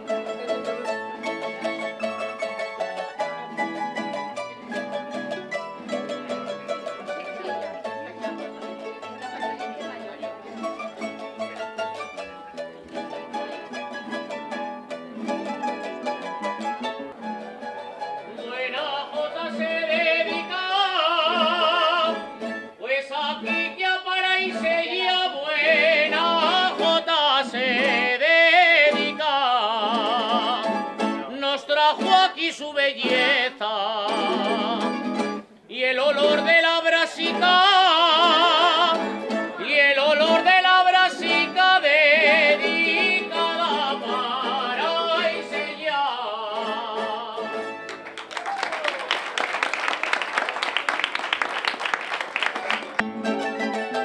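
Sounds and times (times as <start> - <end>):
guitars strumming and plucking: 0.0 - 48.3, 52.7 - 54.0
man singing with heavy vibrato: 18.3 - 47.8
crowd applauding: 47.8 - 53.8.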